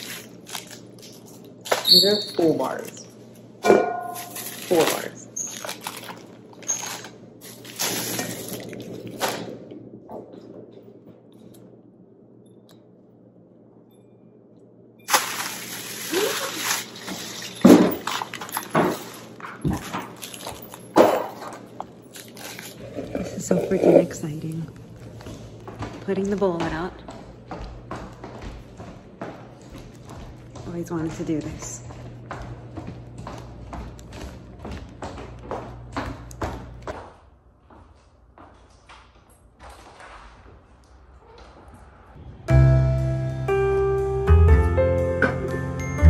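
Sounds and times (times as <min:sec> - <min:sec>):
plastic bag and wrappers rustling: 0:00.0 - 0:03.4, 0:04.1 - 0:09.5, 0:15.1 - 0:24.8.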